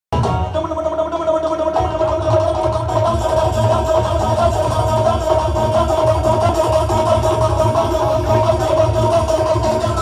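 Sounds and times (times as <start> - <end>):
devotional band music over pa: 0.1 - 10.0
drum beats: 0.1 - 10.0.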